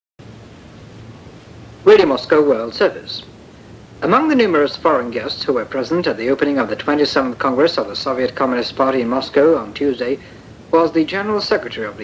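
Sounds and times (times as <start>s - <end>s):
shortwave radio hiss: 0.2s - 12.0s
male announcer speaking: 1.8s - 3.3s, 4.0s - 12.0s.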